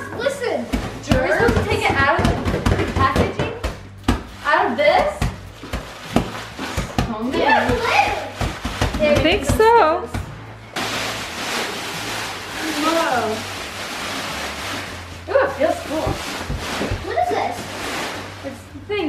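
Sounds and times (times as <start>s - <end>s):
plastic sheet rustling: 4.3s - 9.9s, 10.6s - 18.8s
plastic wrapping crinkling and tearing: 5.4s - 9.3s, 10.7s - 18.7s.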